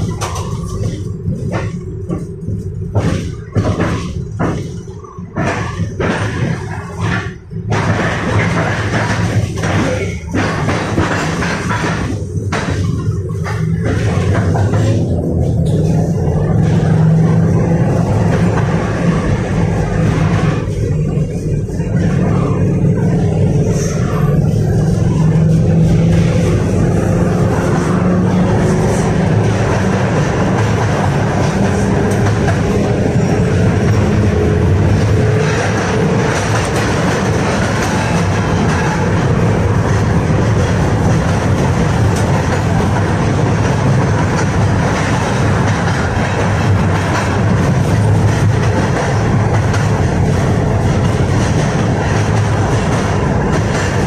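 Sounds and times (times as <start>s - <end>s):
steel wheels on rails: 0.0s - 54.0s.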